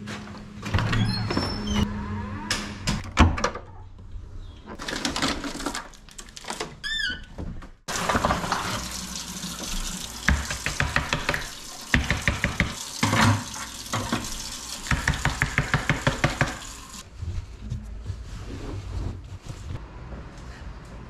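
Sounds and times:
tap water running into sink: 7.9 - 17.0.

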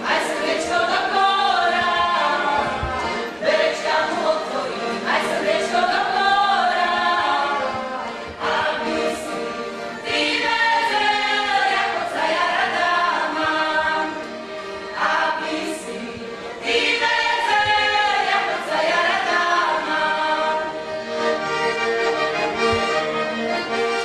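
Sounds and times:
group singing in chorus: 0.0 - 20.9.

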